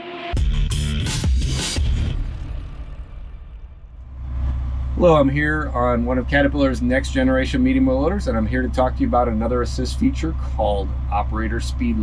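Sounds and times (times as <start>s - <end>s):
electronic music: 0.0s - 4.2s
diesel engine drone: 0.0s - 12.0s.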